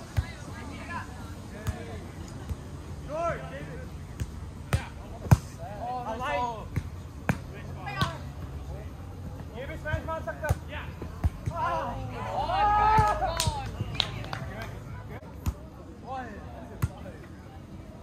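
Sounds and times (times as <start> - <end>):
players shouting: 9.6 - 14.3.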